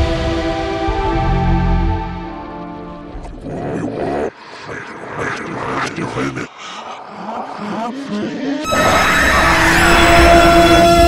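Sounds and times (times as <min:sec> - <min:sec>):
wordless voice sounds: 0:03.4 - 0:08.8.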